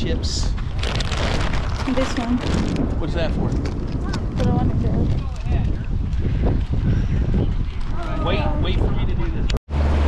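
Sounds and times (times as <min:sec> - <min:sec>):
wind buffeting microphone: 0:00.0 - 0:09.6.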